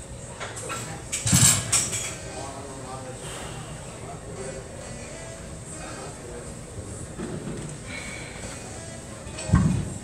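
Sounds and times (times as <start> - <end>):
gym hubbub: 0.0 - 10.0.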